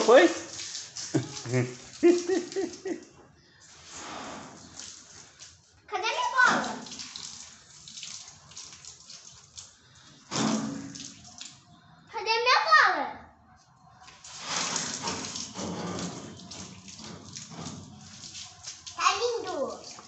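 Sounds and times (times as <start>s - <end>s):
hose water jet spattering: 0.0s - 3.1s, 6.2s - 11.6s, 14.1s - 20.0s.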